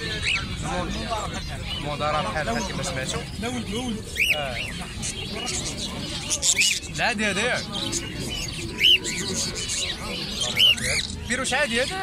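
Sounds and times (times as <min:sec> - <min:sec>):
budgerigars chirping: 0:00.0 - 0:12.0.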